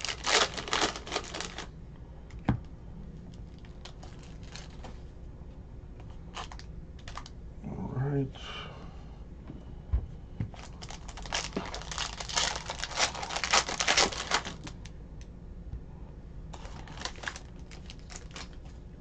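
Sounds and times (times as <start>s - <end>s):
foil wrapper crackling: 0.0s - 1.7s, 3.4s - 4.8s, 6.3s - 7.3s, 10.6s - 14.9s, 16.6s - 18.8s.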